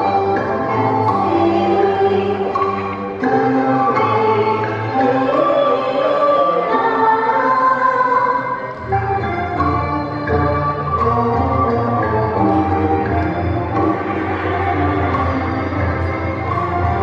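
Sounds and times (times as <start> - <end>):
recorded instrumental accompaniment: 0.0 - 17.0
woman singing into a microphone: 1.0 - 2.6, 3.2 - 8.7.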